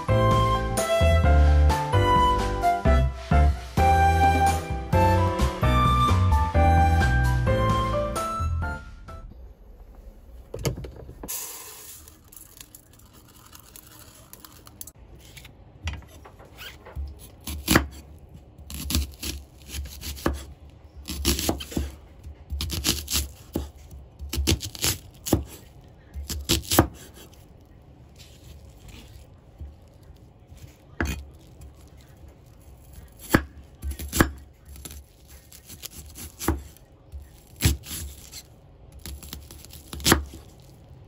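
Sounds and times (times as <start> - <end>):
knife slicing onion: 17.0 - 27.4, 30.6 - 31.9, 32.5 - 40.7.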